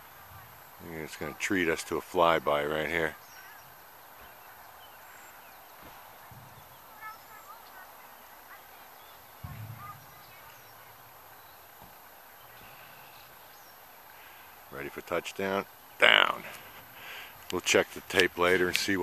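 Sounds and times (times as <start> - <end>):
faint bird chirps: 2.3 - 17.4
short low thumps: 9.4 - 10.4.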